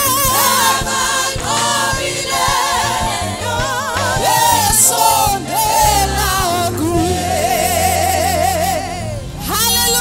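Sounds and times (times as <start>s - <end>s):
choir and congregation singing: 0.0s - 10.0s.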